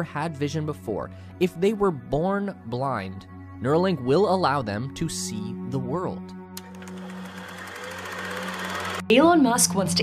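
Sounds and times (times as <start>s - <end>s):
low droning background music: 0.0s - 10.0s
fast buzzing rattle: 6.6s - 9.1s.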